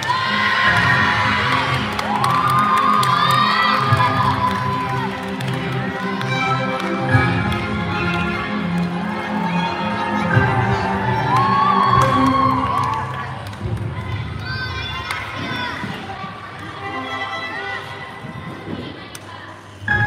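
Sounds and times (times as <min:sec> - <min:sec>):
gymnastics routine music: 0:00.0 - 0:14.5
spectators cheering and shouting: 0:00.0 - 0:16.7.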